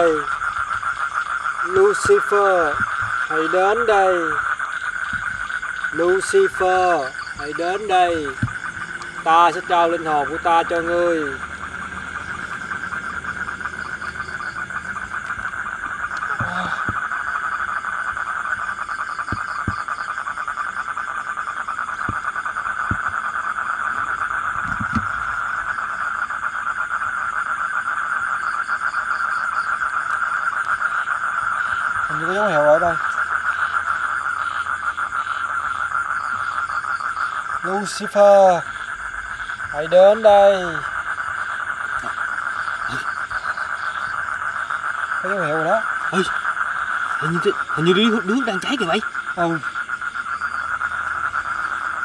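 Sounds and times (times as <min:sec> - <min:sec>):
insects trilling: 0:00.0 - 0:52.0
fast pulsing chirp: 0:01.6 - 0:21.2.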